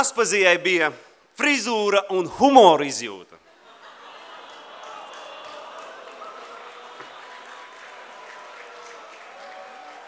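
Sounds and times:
audience laughing: 3.4s - 7.7s
audience applauding: 3.9s - 10.0s.

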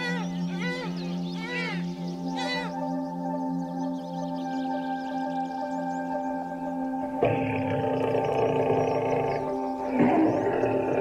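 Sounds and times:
calm ambient music: 0.0s - 11.0s
lion grunt: 7.0s - 11.0s.

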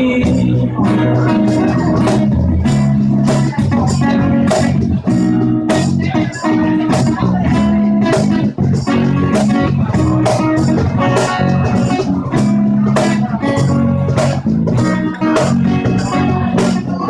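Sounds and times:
acoustic guitar: 0.0s - 17.0s
cajon beat: 0.0s - 17.0s
electric bass: 0.0s - 17.0s.

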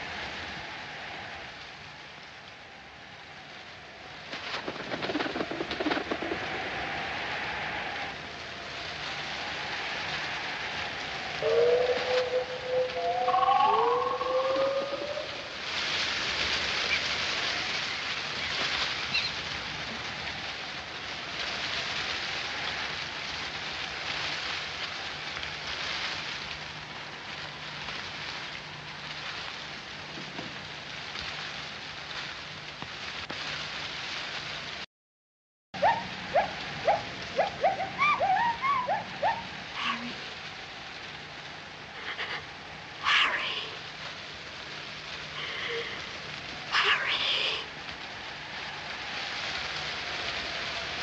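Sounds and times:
steady rain hiss: 0.0s - 34.9s, 35.8s - 51.0s
sliding cry or call: 11.3s - 15.8s, 35.8s - 40.3s.

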